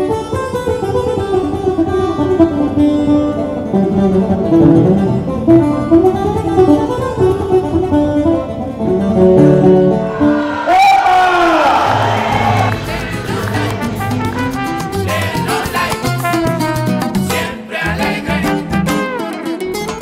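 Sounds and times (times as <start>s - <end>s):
plucked string melody: 0.0s - 10.4s, 12.7s - 20.0s.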